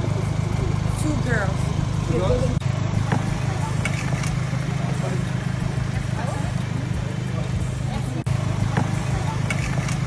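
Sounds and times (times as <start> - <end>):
faint voices: 0.0 - 10.0
vehicle engine idling: 0.0 - 10.0.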